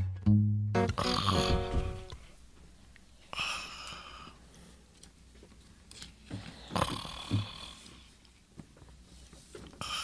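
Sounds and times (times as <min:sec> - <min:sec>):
man snoring: 0:01.0 - 0:01.7.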